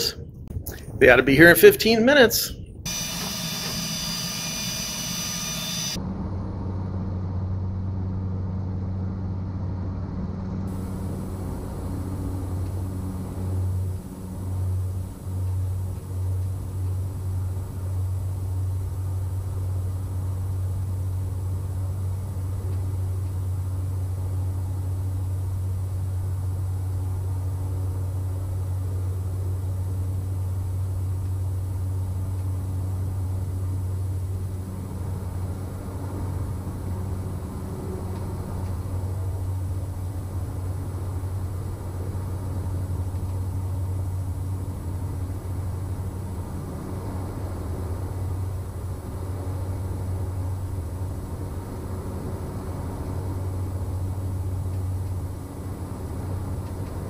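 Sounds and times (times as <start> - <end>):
turboprop engine drone: 0.0 - 57.0.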